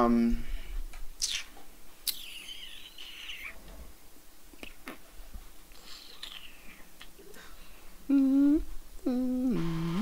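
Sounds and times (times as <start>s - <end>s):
person humming a tune: 8.0s - 10.0s.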